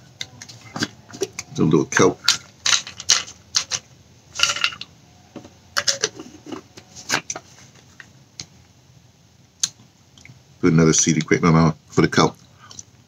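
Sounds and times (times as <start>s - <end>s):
tablets rattling in bottle: 2.2s - 3.8s, 4.4s - 4.8s.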